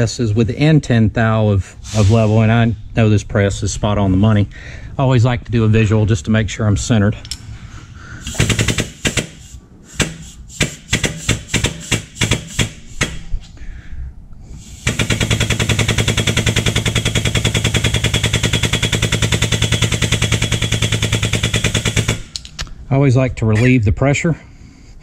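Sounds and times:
hydraulic pump pulsing: 0:14.6 - 0:22.2.

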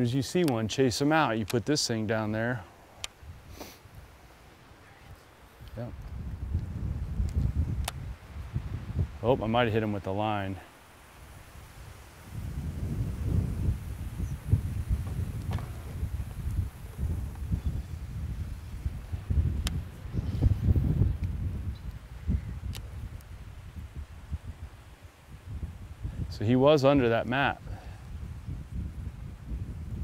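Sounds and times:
faint sharp clicks: 0:00.4 - 0:00.6, 0:05.6 - 0:08.0, 0:19.6 - 0:19.8, 0:22.7 - 0:23.3
wind buffeting microphone: 0:05.0 - 0:10.2, 0:11.2 - 0:30.0.

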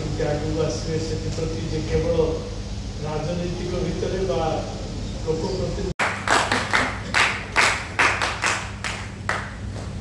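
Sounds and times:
people clapping: 0:06.0 - 0:10.0.

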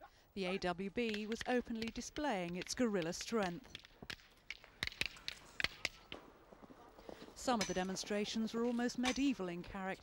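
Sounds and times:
sharp cracks: 0:01.0 - 0:06.2.

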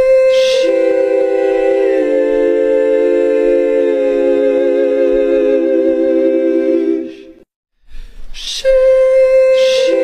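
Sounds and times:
choir-like vocal chord: 0:00.0 - 0:07.4.

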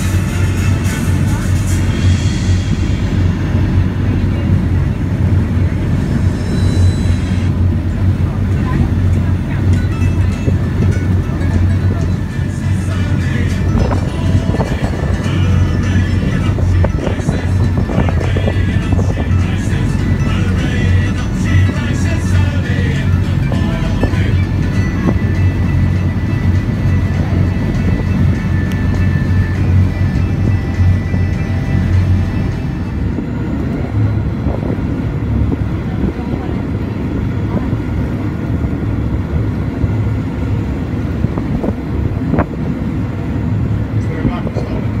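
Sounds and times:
music: 0:00.0 - 0:07.6, 0:08.5 - 0:35.3
bus engine droning: 0:00.0 - 0:45.0
voices: 0:02.9 - 0:38.8, 0:43.9 - 0:45.0.

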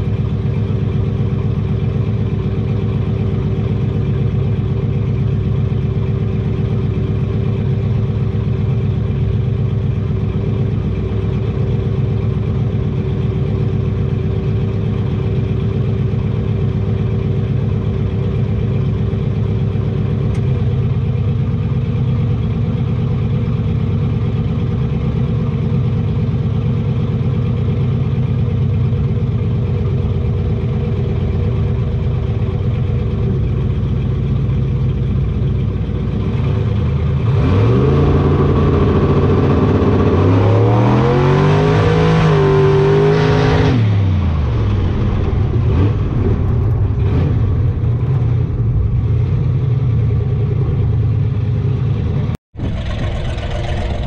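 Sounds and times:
car engine idling: 0:00.0 - 0:40.4, 0:43.9 - 0:54.0.

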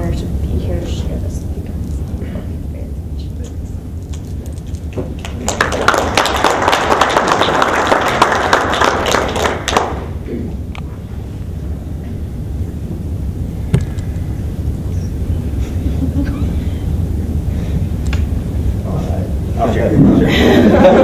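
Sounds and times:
room rumble and murmur: 0:00.0 - 0:21.0
people clapping: 0:04.1 - 0:10.2.

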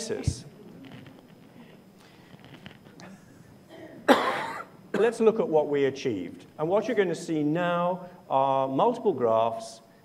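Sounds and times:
person coughing: 0:03.7 - 0:05.2.

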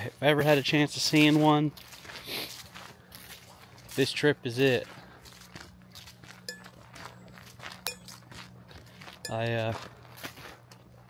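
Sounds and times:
footsteps crunching on trail: 0:00.0 - 0:11.0.

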